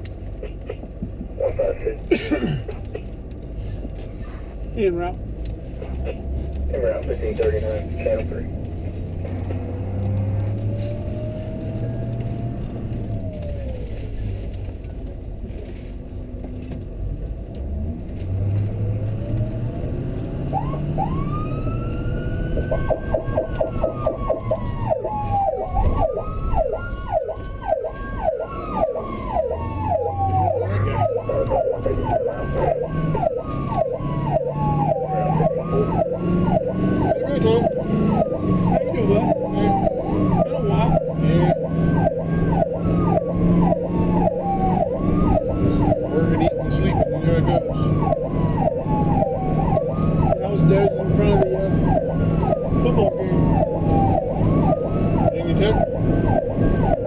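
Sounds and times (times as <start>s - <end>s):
ambulance siren yelp and wail: 9.1s - 14.2s, 18.3s - 57.0s.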